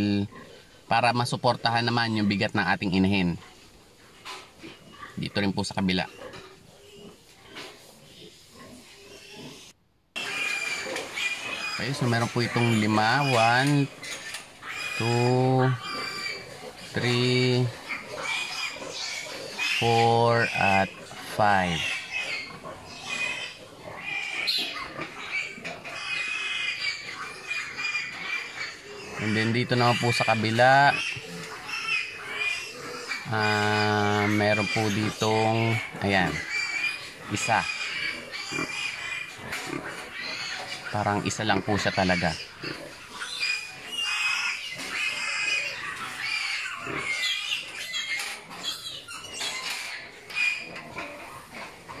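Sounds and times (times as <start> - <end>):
pigs squealing: 0.0 - 52.0
high-pitched animal calls: 8.1 - 51.7.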